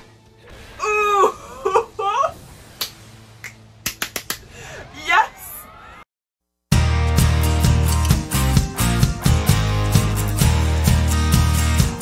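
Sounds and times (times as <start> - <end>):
sharp hand claps: 3.4 - 4.5.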